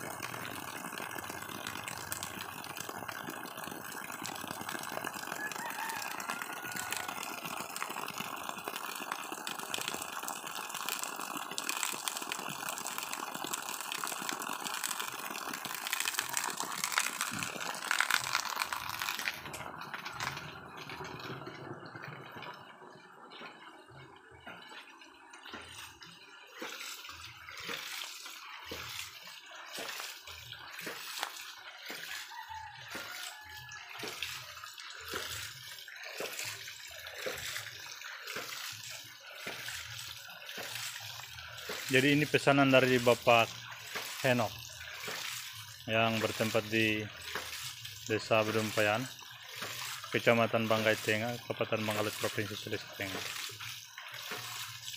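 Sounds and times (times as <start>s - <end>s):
pump valve cycling: 0.0s - 54.9s
water spilling from valve: 0.0s - 54.9s
water splashing from pipe: 0.0s - 54.9s.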